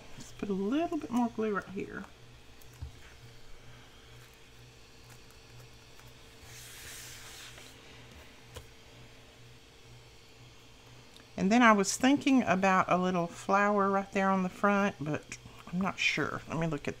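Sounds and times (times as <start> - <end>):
low electrical hum: 0.0 - 17.0
soft paper rustle: 4.1 - 7.8.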